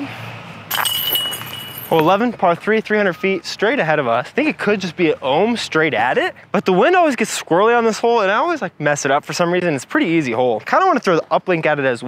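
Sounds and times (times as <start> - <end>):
chains clinking: 0.7 - 2.2.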